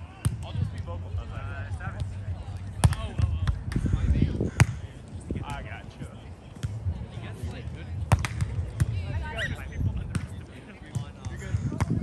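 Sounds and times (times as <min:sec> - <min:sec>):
volleyball hits: 0:08.1 - 0:09.0.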